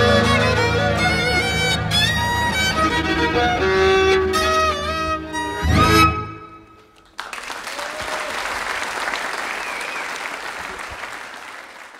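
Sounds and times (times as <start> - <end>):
audience applauding: 6.8 - 11.9.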